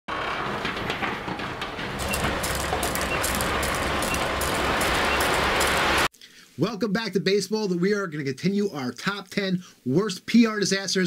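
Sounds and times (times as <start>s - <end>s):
excavator working: 0.1s - 6.1s.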